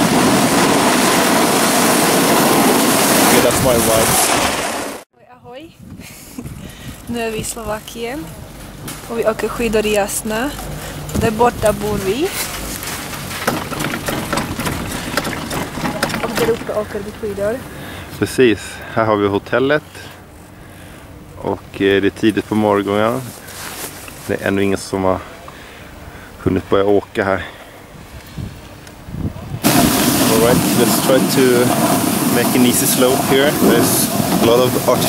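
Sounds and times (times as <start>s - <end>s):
wind rushing on microphone: 0.0s - 8.1s, 27.9s - 35.0s
low rumble: 5.7s - 17.8s
soft knocks: 13.4s - 16.8s.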